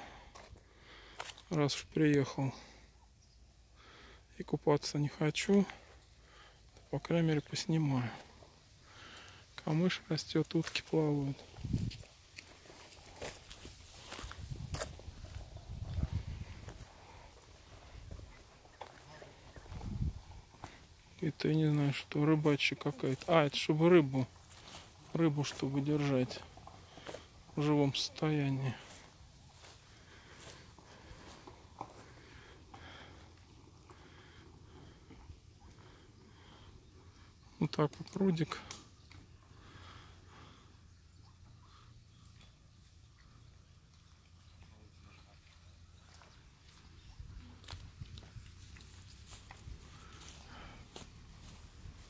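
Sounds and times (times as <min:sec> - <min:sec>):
footsteps on grass: 0:10.5 - 0:20.9, 0:22.8 - 0:33.1, 0:46.7 - 0:52.0.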